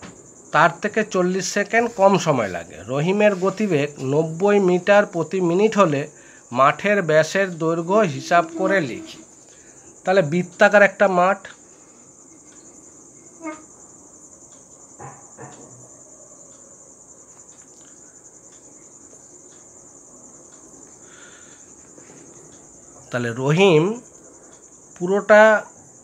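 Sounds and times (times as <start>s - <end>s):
crickets trilling: 0.0s - 26.0s
person speaking: 0.6s - 9.2s.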